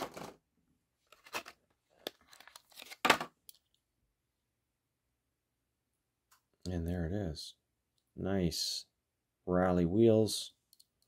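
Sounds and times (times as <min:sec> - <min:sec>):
plastic packaging crinkling and tearing: 0:01.2 - 0:03.1.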